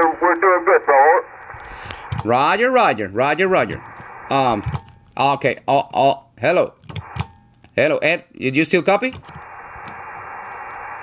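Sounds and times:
radio static hiss: 0.0s - 5.2s, 7.0s - 7.4s, 9.2s - 11.0s.

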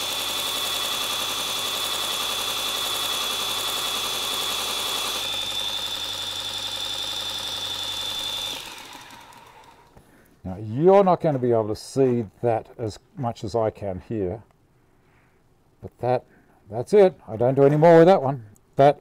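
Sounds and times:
belt sharpener grinding blade: 0.0s - 10.0s
motor winding down: 0.0s - 10.0s.

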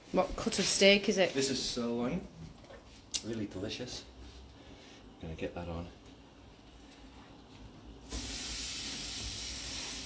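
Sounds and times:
steak sizzling on grill: 8.1s - 10.0s.

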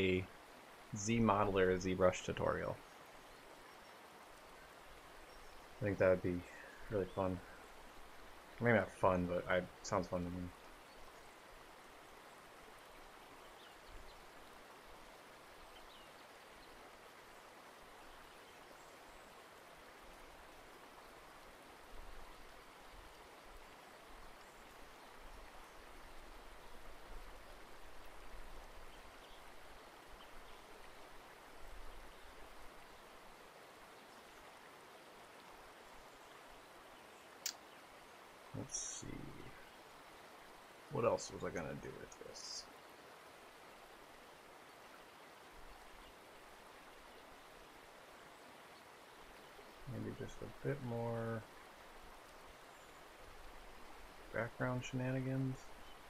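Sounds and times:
faint low rumbles: 5.4s - 10.6s, 38.6s - 39.8s, 49.8s - 51.5s.

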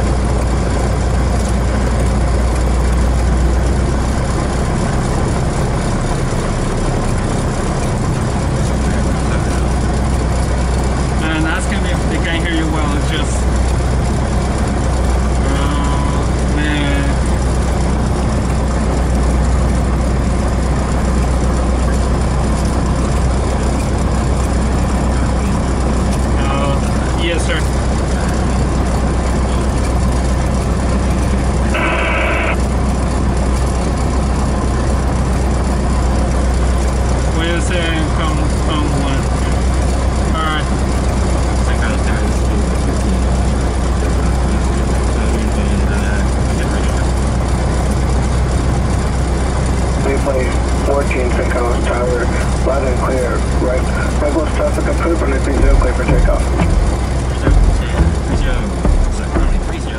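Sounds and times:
propeller plane engine idling: 0.0s - 59.9s
radio speech: 11.2s - 13.5s, 31.6s - 32.7s, 50.0s - 59.9s.

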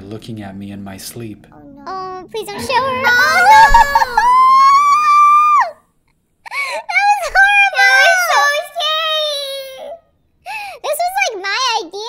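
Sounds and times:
wordless wailing and whimpering: 2.6s - 5.6s
high-pitched voice screaming: 2.6s - 5.8s.

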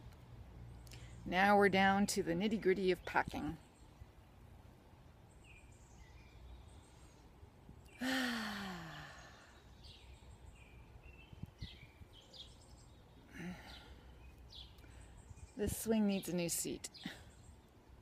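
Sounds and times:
woman sighing: 8.0s - 9.6s, 13.3s - 14.0s.

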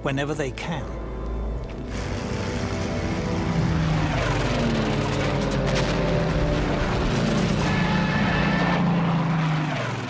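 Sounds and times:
propeller aircraft engine drone: 0.9s - 10.0s.

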